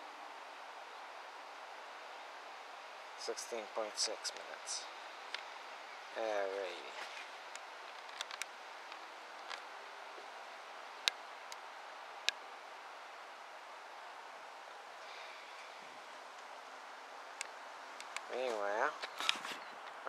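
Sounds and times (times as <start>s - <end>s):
faint steady hiss: 0.0s - 20.0s
sharp clicks: 17.4s - 18.3s.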